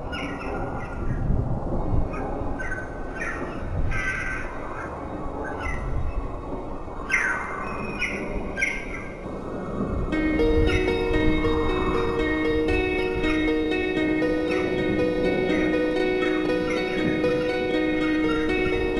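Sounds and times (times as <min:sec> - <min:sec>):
crows cawing: 0:02.7 - 0:04.9.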